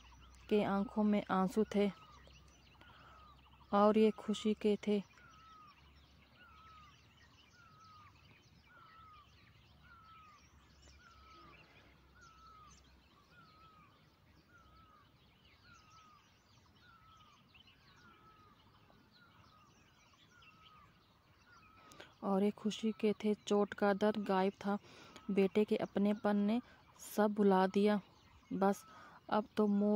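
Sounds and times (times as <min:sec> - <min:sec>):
faint bird chirps: 0:00.0 - 0:29.9.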